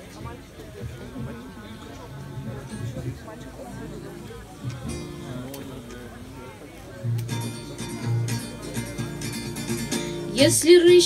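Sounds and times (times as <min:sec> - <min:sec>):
acoustic guitar strumming: 0:02.6 - 0:06.1, 0:07.0 - 0:11.0.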